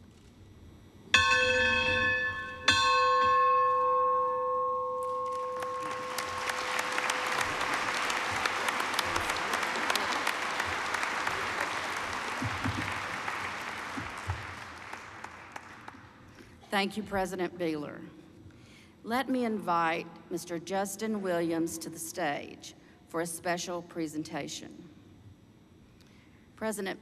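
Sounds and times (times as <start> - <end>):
audience applauding: 5.2 - 16.2.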